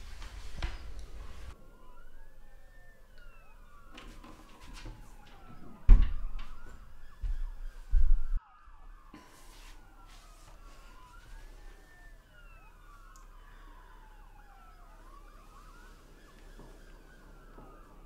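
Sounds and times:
sirens wailing: 0.0 - 18.0.

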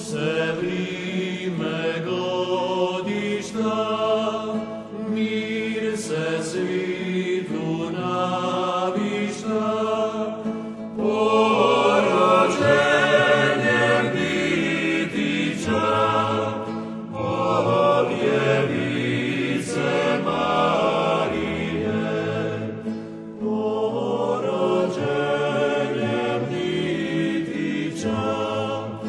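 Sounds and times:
choir singing slow chant: 0.0 - 29.0.

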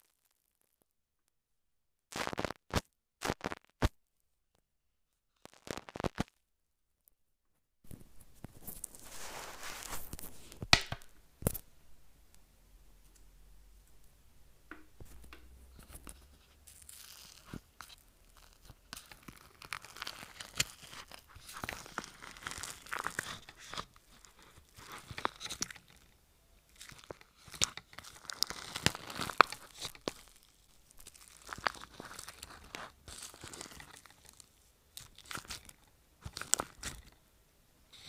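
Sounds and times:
slime crackling and popping: 15.2 - 37.1.

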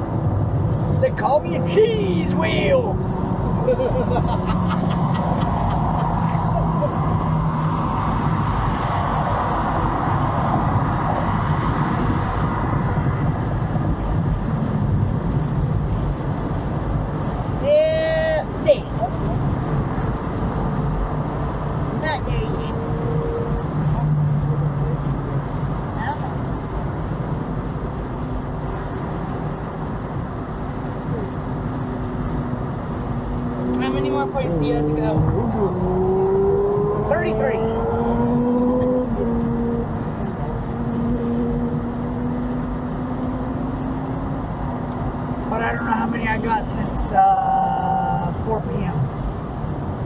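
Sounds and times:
road and tyre noise in car: 0.0 - 50.0.

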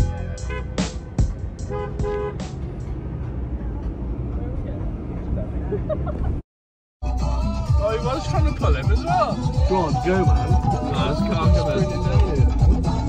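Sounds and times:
car horn toots: 0.0 - 2.6
music with a regular beat: 0.0 - 2.6, 7.0 - 13.0
car driving rumble: 0.0 - 6.4.

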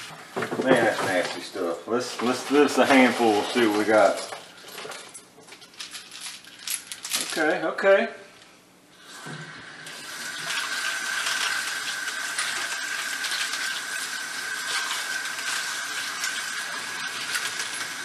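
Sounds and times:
faucet running water: 0.8 - 4.8, 9.0 - 18.0.

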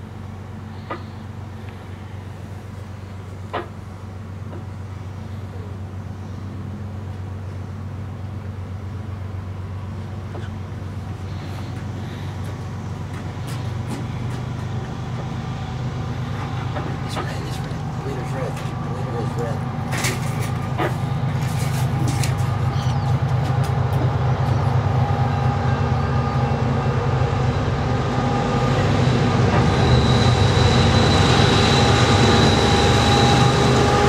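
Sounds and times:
low engine drone: 0.0 - 34.0.

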